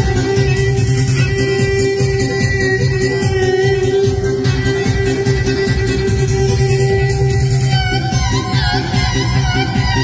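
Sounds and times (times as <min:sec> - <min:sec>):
folk music through loudspeakers: 0:00.0 - 0:10.0
steady bass beat: 0:00.0 - 0:10.0.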